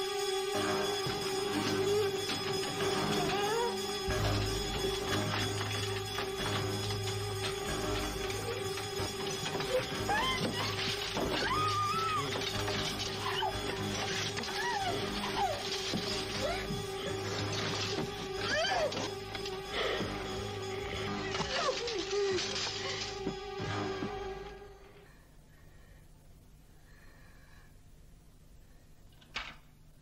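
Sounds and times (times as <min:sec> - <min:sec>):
suspense music drone: 0:00.0 - 0:25.3
woman whimpering: 0:09.5 - 0:12.5.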